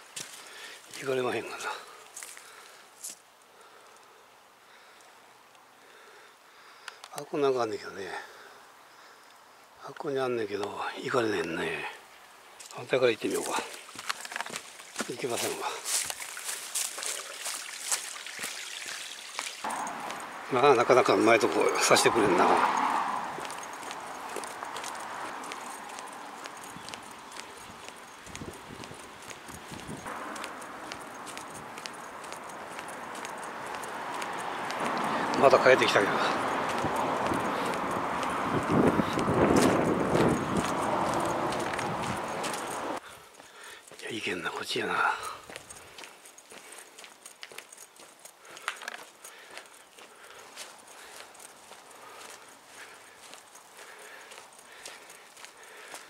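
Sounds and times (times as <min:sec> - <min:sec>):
footsteps on asphalt: 0:00.0 - 0:03.3, 0:12.6 - 0:56.0.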